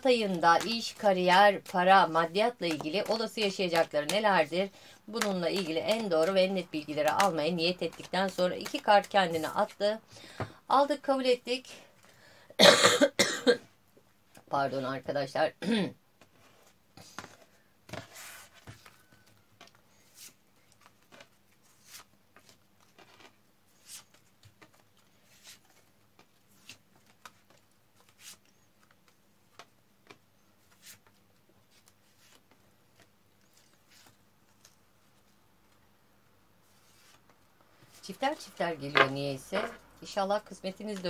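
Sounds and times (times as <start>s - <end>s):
cards scraping on wooden table: 38.9s - 39.8s.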